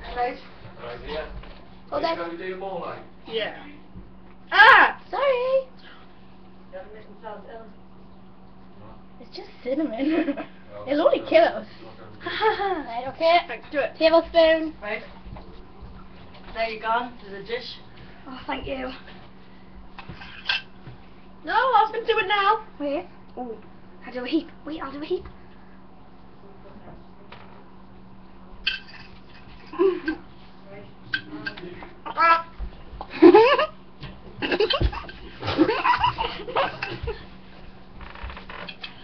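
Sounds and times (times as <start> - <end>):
girls laughing: 12.2 - 12.9, 33.1 - 33.8, 34.4 - 37.3.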